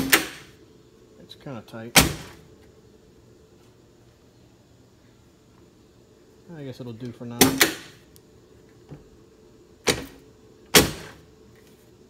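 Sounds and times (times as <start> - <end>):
car door slammed shut: 2.0 - 2.4, 9.9 - 11.2.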